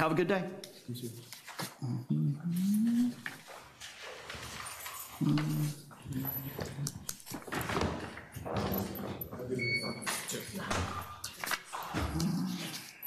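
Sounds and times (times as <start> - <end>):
rustling and shuffling: 0.6 - 1.9, 2.5 - 10.6.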